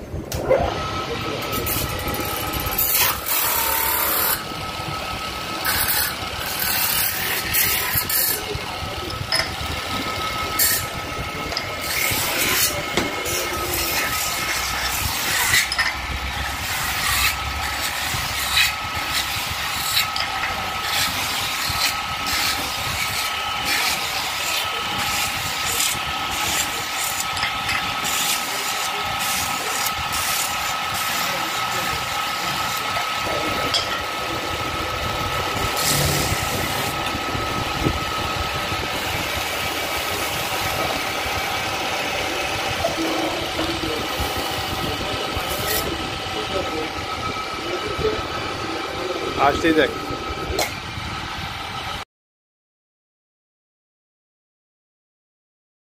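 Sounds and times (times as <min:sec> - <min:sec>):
metal lathe whining: 0:00.3 - 0:52.0
tool scraping spinning metal: 0:00.4 - 0:50.8.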